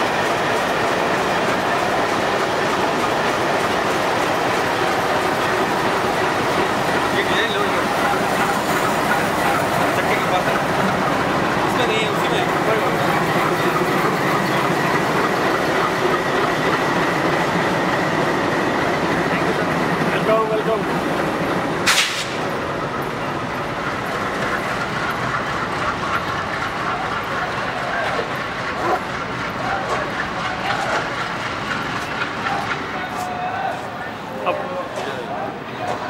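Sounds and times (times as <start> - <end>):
diesel locomotive engine rumble: 0.0 - 36.0
crowd voices: 26.6 - 36.0.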